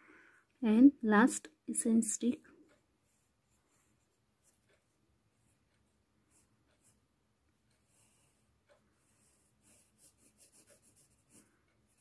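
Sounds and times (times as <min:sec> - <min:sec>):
pencil scratching on paper: 0:02.7 - 0:12.0.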